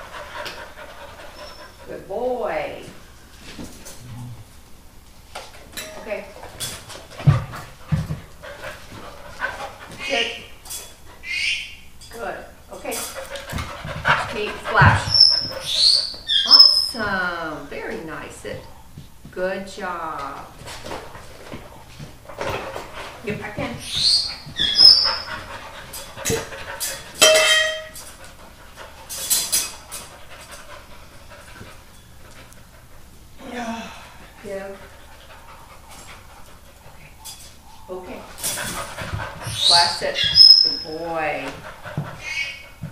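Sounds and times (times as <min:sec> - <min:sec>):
dog panting softly: 0:00.0 - 0:02.2, 0:07.1 - 0:10.6, 0:13.1 - 0:15.9, 0:20.7 - 0:27.2, 0:28.0 - 0:33.4, 0:34.1 - 0:42.9
dog whining: 0:14.8 - 0:17.0, 0:23.8 - 0:25.5, 0:39.4 - 0:41.0.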